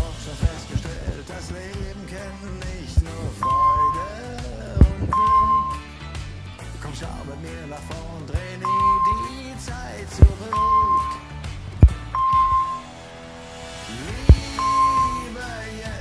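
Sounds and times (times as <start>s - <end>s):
background pop music: 0.0s - 16.0s
short high beep: 3.3s - 4.2s, 5.1s - 5.8s, 8.6s - 9.4s, 10.2s - 11.3s, 11.9s - 12.9s, 14.3s - 15.4s.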